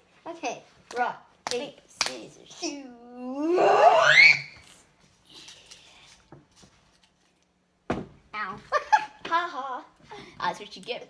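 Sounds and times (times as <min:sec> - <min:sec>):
child squealing: 0:03.3 - 0:04.6.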